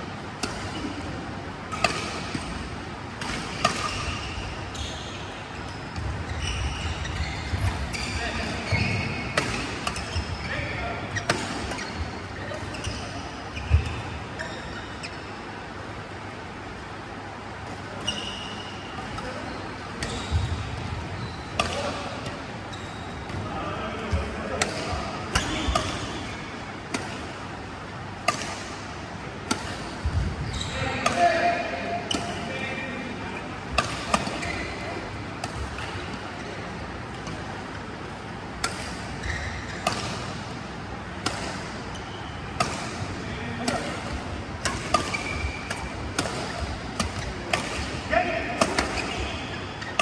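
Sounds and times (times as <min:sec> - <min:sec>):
rackets hitting shuttlecocks: 0:33.6 - 0:34.6, 0:38.6 - 0:50.0.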